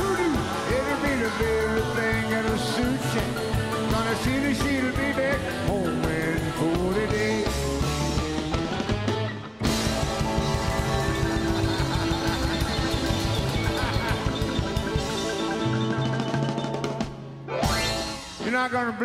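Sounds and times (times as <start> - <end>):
live rock and roll band: 0.0 - 19.0.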